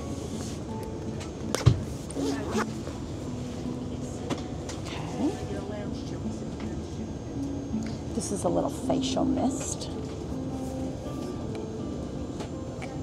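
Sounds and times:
airplane cabin noise: 0:00.0 - 0:13.0.

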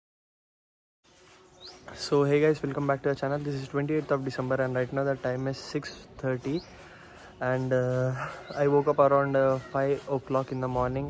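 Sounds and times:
faint outdoor background noise: 0:01.0 - 0:11.0
man speaking: 0:01.9 - 0:06.7, 0:07.4 - 0:11.0.

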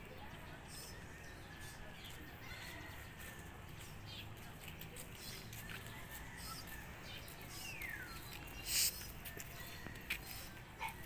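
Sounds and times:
bird chirps: 0:06.3 - 0:09.6
bird calling: 0:07.5 - 0:09.2.

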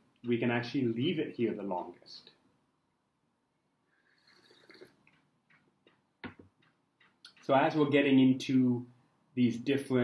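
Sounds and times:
sipping tea: 0:03.8 - 0:05.3
cup taps: 0:04.7 - 0:07.5.

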